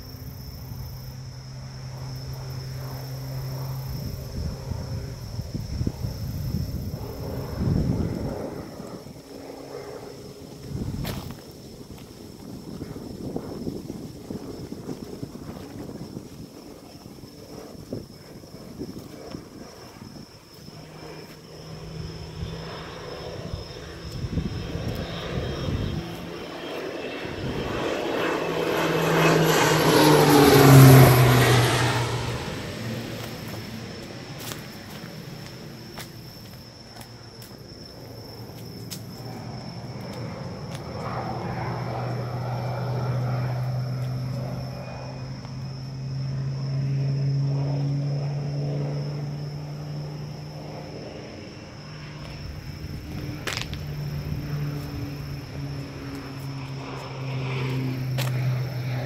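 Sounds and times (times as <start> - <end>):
propeller airplane engine droning: 0.0 - 59.0.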